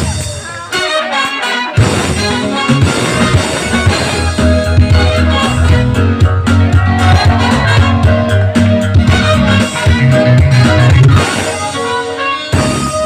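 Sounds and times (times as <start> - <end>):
live latin dance band: 0.0 - 13.0
pulsing bass line: 1.8 - 11.7.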